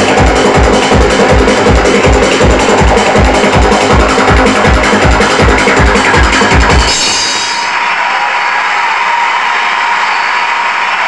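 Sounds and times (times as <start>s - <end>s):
techno synth wash over loudspeakers: 0.0s - 7.8s.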